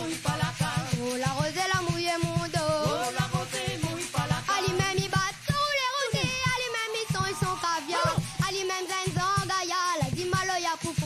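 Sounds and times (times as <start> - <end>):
boy singing with vibrato: 0.0 - 11.0
live band accompaniment: 0.0 - 11.0
quick drum beat: 0.0 - 11.0.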